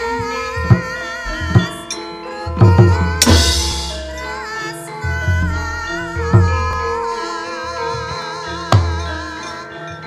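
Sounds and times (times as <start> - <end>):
singer's wavering held notes: 0.0 - 10.0
drum strokes: 2.6 - 7.1
loud ringing crash: 3.2 - 4.7.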